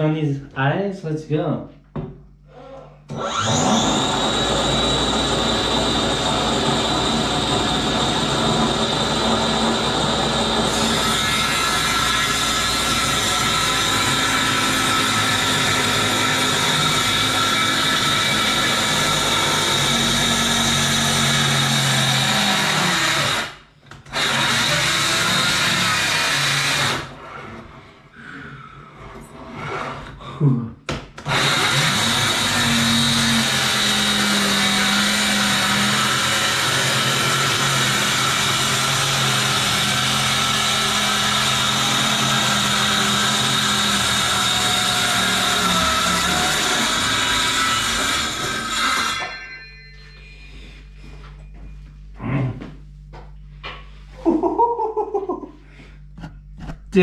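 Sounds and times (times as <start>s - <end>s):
circular saw cutting: 3.1s - 27.6s, 31.3s - 49.4s.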